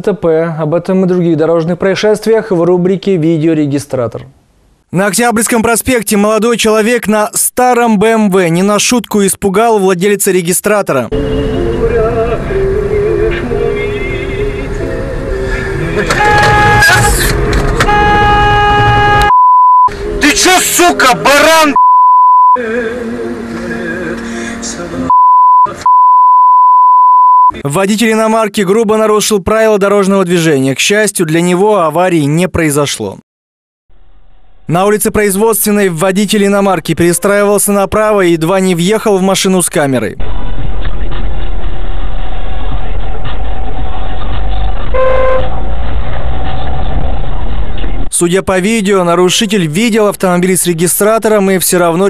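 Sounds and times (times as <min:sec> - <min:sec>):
car engine and road rumble: 0:11.2 - 0:19.3, 0:40.2 - 0:48.1
car horn honk: 0:16.0 - 0:19.4, 0:44.9 - 0:45.6
low voice inside car: 0:16.1 - 0:17.4
censor bleep tone: 0:18.0 - 0:19.9, 0:21.8 - 0:22.6, 0:25.1 - 0:27.6, 0:44.9 - 0:45.5.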